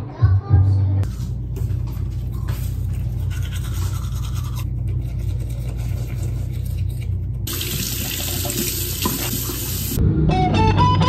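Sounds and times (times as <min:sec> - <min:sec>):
teeth being brushed: 0:03.0 - 0:07.4
faucet running: 0:07.5 - 0:10.0.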